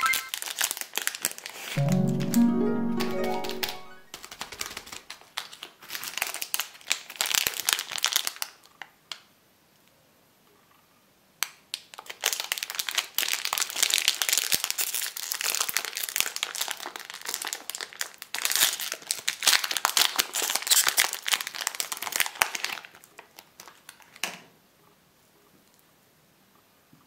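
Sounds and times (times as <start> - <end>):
plastic wrapper crinkling: 0.0 - 1.7, 4.1 - 8.9, 11.7 - 24.2.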